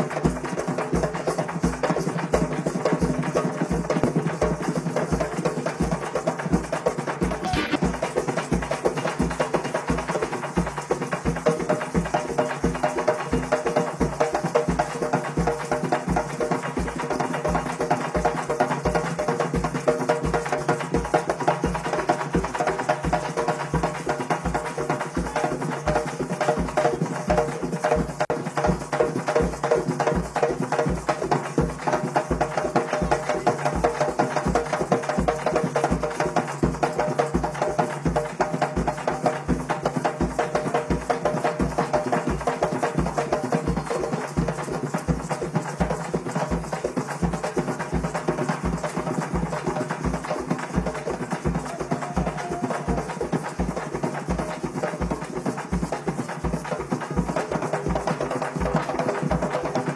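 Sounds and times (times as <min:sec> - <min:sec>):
group of long drums playing: 0:00.0 - 0:59.9.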